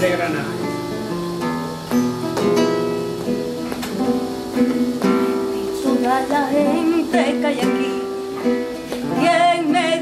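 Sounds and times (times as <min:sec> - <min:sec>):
acoustic guitar playing: 0:00.0 - 0:10.0.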